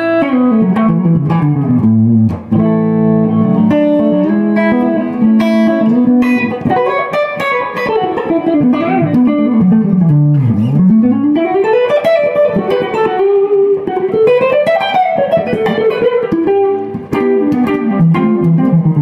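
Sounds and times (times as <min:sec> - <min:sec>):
clean electric guitar playing: 0:00.0 - 0:19.0.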